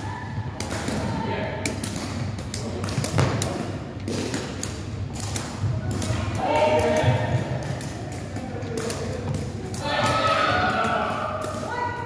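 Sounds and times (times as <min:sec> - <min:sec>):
shoes kicking shuttlecock: 0:00.1 - 0:11.7.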